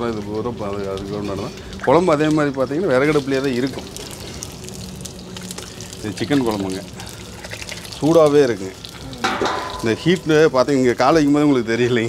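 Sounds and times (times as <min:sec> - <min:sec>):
steady low hum and hiss: 0:00.0 - 0:12.0.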